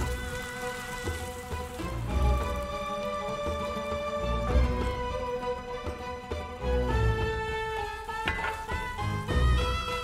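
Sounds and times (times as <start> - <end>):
background music with melodic notes: 0.0 - 10.0.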